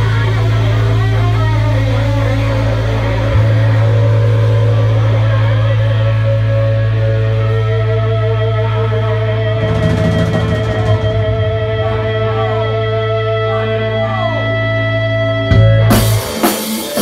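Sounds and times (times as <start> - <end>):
steady low bass note: 0.0 - 16.3
electric guitars with vibrato: 0.0 - 17.0.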